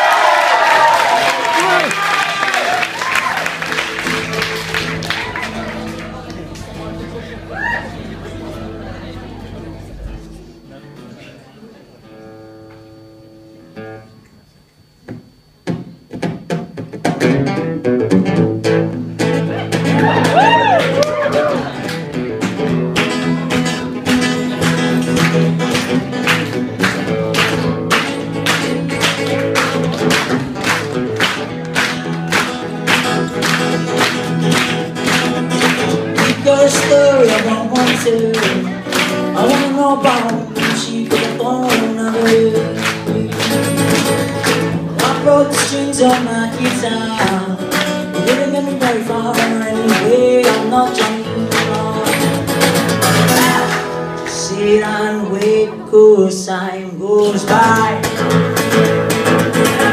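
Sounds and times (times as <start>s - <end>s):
audience murmur: 1.4s - 12.3s, 19.2s - 23.3s, 38.1s - 40.8s
acoustic guitar strumming chords: 2.8s - 59.9s
man singing: 36.1s - 44.1s, 44.8s - 58.4s.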